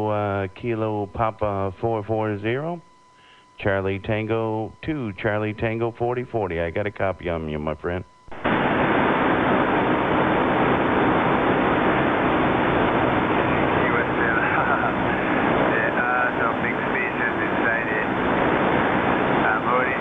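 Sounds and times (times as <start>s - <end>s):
radio static hiss: 0.0s - 20.0s
faint voice over radio: 13.7s - 18.1s, 19.4s - 20.0s.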